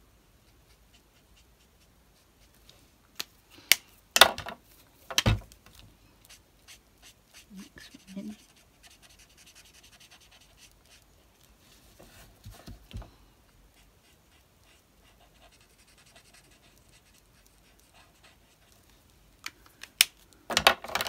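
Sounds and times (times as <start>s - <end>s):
marker scratching on paper: 0.4s - 2.6s, 6.2s - 11.4s, 13.8s - 18.8s.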